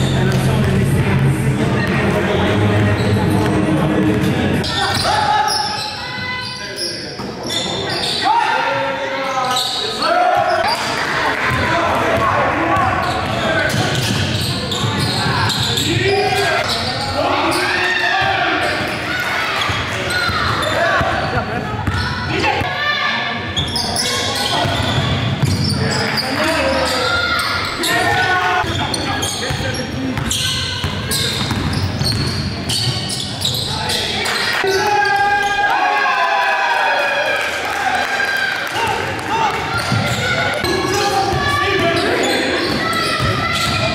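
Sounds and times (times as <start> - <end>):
players calling out: 0.0 - 43.9
basketball bouncing on court: 19.6 - 22.1, 24.5 - 25.8, 29.4 - 33.2, 39.5 - 43.9.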